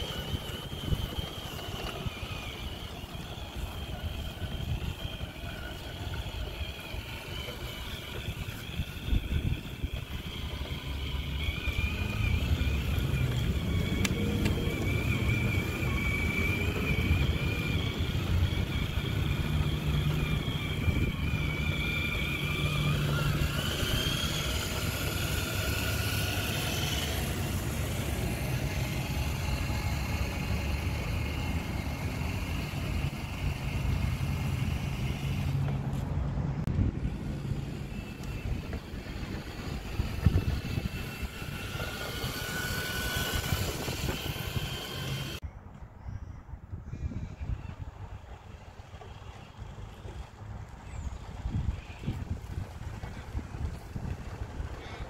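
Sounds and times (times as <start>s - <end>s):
electric motor and gearbox whine: 0.0s - 45.4s, 47.7s - 55.0s.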